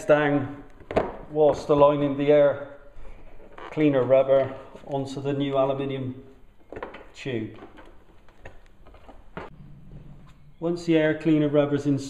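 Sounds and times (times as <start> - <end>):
faint low hum: 8.8 - 11.7.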